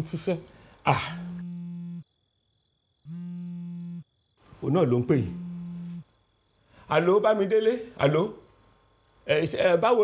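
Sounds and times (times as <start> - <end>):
crickets chirping: 0.0 - 10.0
telephone ringing tone: 3.1 - 4.0, 5.2 - 6.0.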